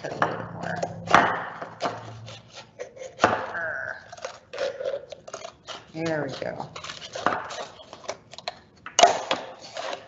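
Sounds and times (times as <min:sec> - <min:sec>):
scissors cutting paperboard: 0:00.0 - 0:10.0.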